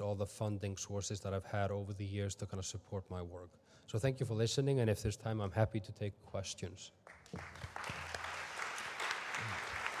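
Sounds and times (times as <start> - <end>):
audience applauding: 7.1 - 10.0.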